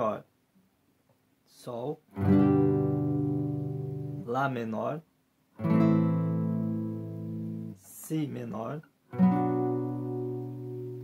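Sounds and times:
classical guitar chord ringing: 2.1s - 4.3s, 5.6s - 7.8s, 9.1s - 11.0s.

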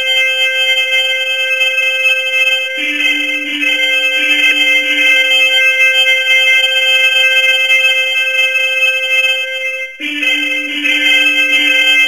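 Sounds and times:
chord of steady electronic tones: 0.0s - 12.0s.

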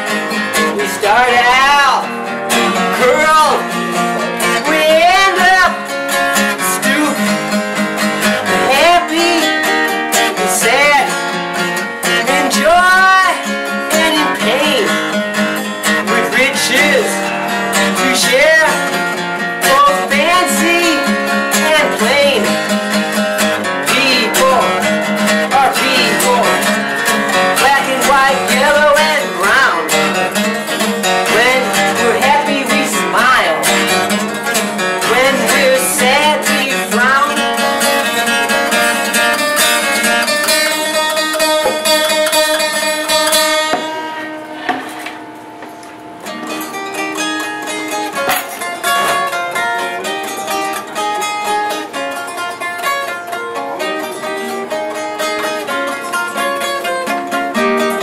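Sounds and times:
man singing: 0.0s - 11.4s, 12.0s - 15.2s, 15.8s - 22.8s, 23.4s - 43.2s
strummed acoustic guitar: 0.0s - 58.0s.

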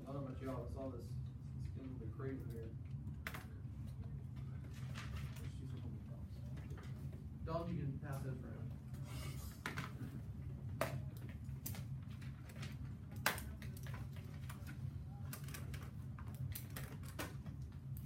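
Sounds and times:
low room hum: 0.0s - 18.0s
papers and pencils tapping: 9.6s - 18.0s.

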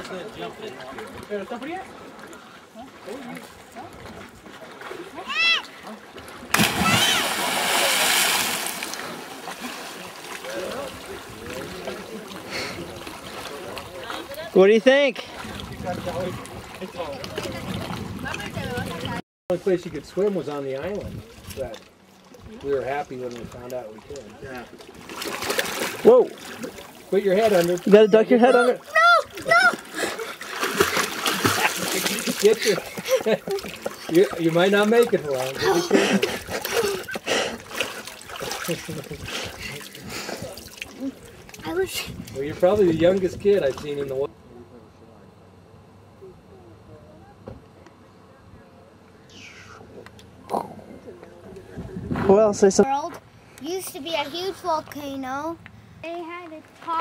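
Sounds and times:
child shouting: 5.2s - 5.7s, 6.8s - 7.3s, 28.4s - 29.9s
big splash into water: 6.4s - 11.1s
swimmer splashing in water: 6.4s - 14.4s, 28.8s - 41.7s.

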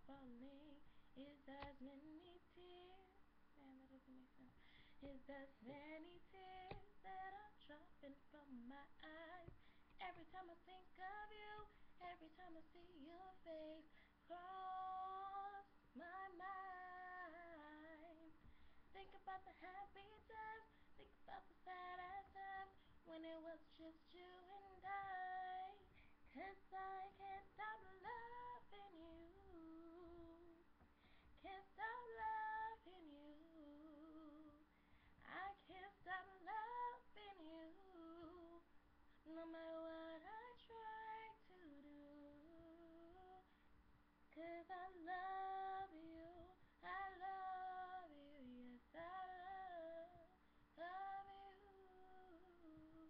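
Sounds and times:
woman singing a cappella: 0.0s - 43.6s, 44.3s - 53.0s.

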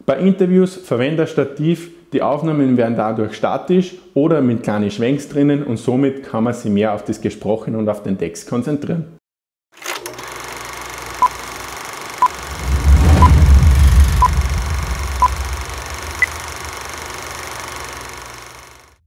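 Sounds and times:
short electronic beeps: 12.2s - 13.5s, 14.1s - 16.4s
low rumble: 12.2s - 17.5s
electronic noise bed: 12.2s - 18.9s.

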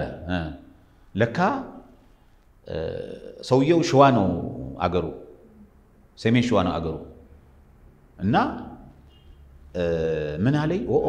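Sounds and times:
man speaking: 0.0s - 0.6s, 1.2s - 1.9s, 2.7s - 5.3s, 6.2s - 7.1s, 8.2s - 8.9s, 9.8s - 11.0s.

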